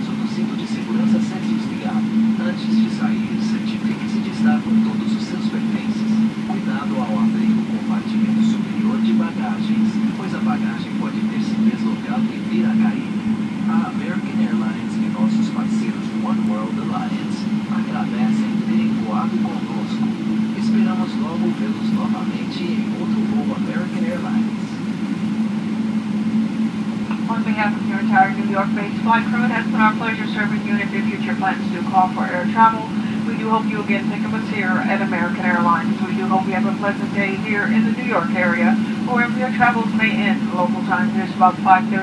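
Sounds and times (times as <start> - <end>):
faint voices: 0.0 - 25.0, 26.9 - 42.0
airplane cabin engine drone: 0.0 - 42.0.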